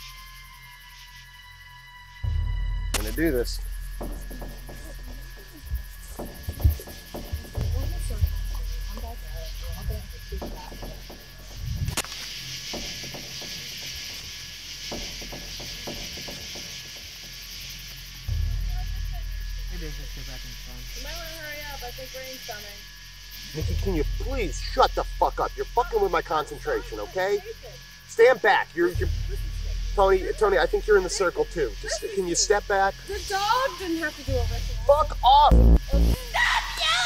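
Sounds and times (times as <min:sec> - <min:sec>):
wind on microphone: 0:11.6 - 0:12.0.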